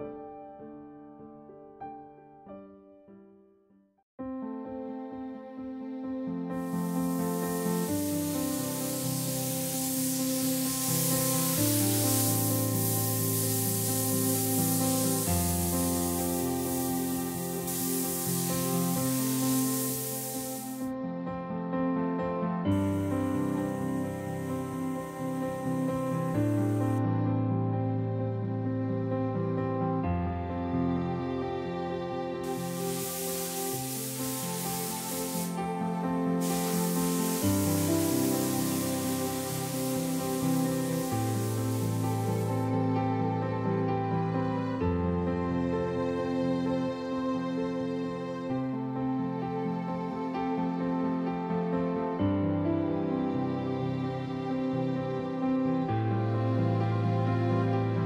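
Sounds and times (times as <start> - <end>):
slow background music: 4.2 - 58.0
paint spray gun hissing: 6.5 - 20.9, 22.7 - 27.0, 32.4 - 42.9.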